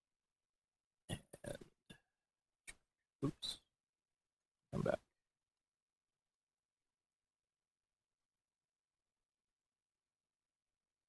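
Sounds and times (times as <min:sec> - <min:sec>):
man speaking: 0:03.2 - 0:03.7, 0:04.8 - 0:05.0.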